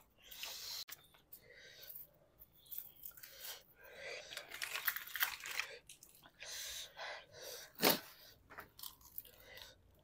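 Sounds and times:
people chewing noodles: 1.7s - 10.0s.

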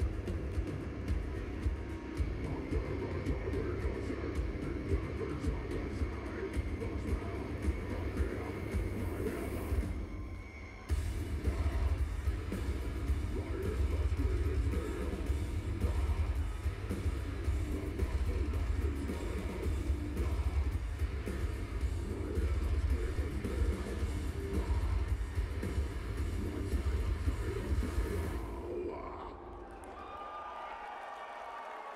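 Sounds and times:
live metal band playing: 0.0s - 10.1s, 10.9s - 28.9s
crowd noise: 0.0s - 31.9s.

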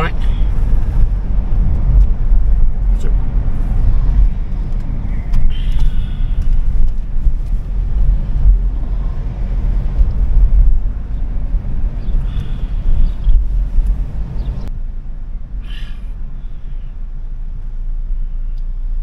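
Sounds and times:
car cabin rumble while driving: 0.0s - 19.0s.

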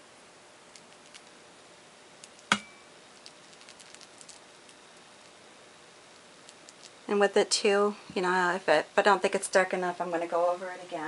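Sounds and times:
tap on ringing glass: 2.5s - 2.9s.

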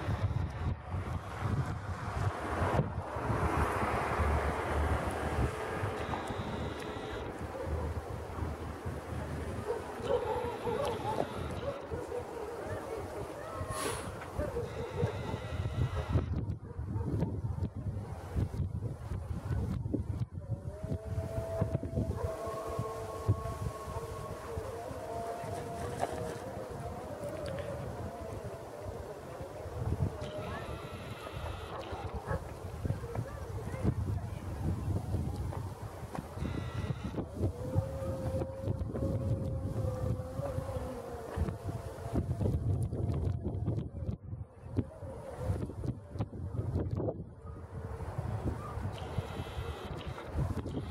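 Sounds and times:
wind buffeting microphone: 0.0s - 50.9s
faint clicks: 27.2s - 27.7s
wavering whine of held tones: 30.2s - 32.0s.

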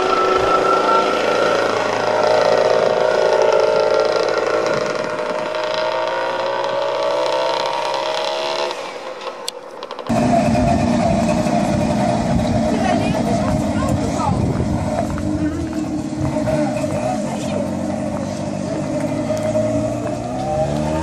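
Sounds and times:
small two-stroke car engine: 0.0s - 21.0s.

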